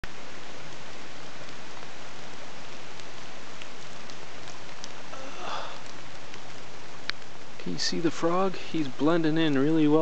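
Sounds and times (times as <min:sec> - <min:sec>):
faint ticks: 0:02.8 - 0:07.6.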